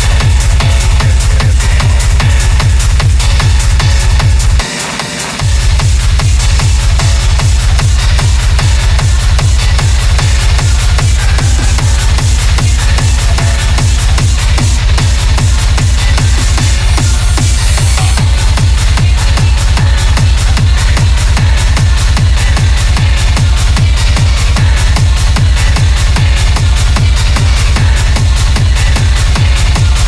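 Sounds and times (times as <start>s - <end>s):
hard techno music: 0.0s - 30.0s.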